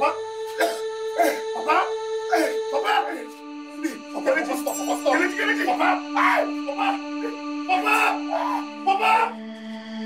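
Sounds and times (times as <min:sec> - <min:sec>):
man wailing and sobbing: 0:00.0 - 0:09.4
music of sustained notes: 0:00.0 - 0:10.0.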